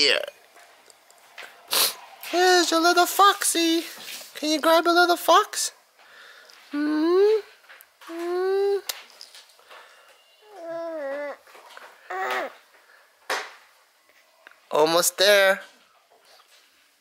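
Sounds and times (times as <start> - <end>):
person humming questioningly: 6.7 - 7.5, 8.1 - 8.9
baby cooing and whining: 10.4 - 12.7
baby grunting: 12.0 - 12.6.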